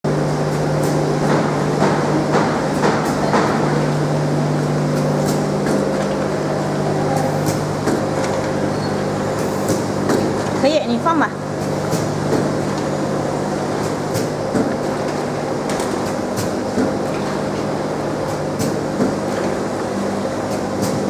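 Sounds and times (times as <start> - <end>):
machine humming: 0.1 - 21.0.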